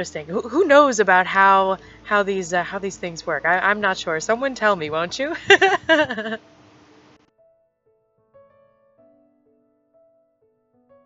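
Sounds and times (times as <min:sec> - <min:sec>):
woman laughing: 0:05.2 - 0:06.4.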